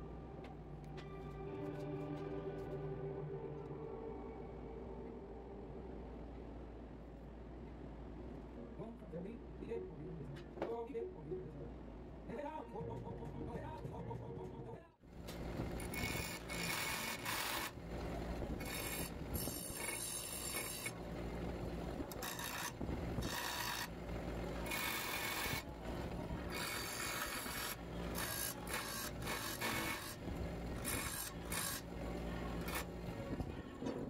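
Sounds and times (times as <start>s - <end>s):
bench grinder motor hum: 15.2s - 33.5s
steel bar grinding on wheel: 15.3s - 33.5s.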